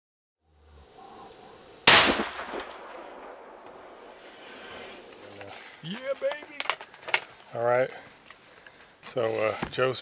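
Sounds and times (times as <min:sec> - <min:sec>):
low outdoor hiss: 0:00.4 - 0:10.0
bow shot crack: 0:01.3 - 0:04.2.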